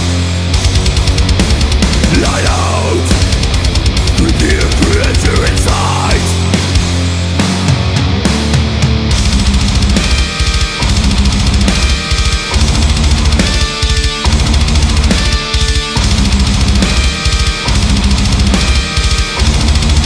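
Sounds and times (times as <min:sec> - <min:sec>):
heavy bass drum: 0:00.0 - 0:20.0
heavy metal band playing: 0:00.0 - 0:20.0.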